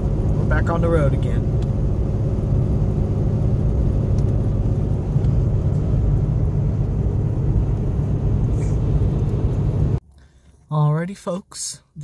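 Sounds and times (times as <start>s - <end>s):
constant hum: 0.0s - 12.0s
truck engine and road rumble: 0.0s - 12.0s.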